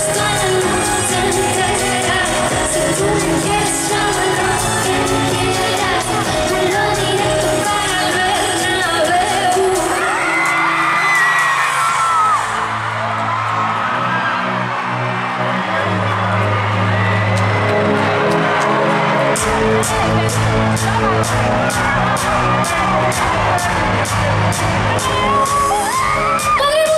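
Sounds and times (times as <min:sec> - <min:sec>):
woman singing: 0:00.0 - 0:11.8, 0:25.8 - 0:26.9
crowd noise: 0:00.0 - 0:26.9
pop song over sound system: 0:00.0 - 0:26.9
drum beat: 0:19.4 - 0:26.9.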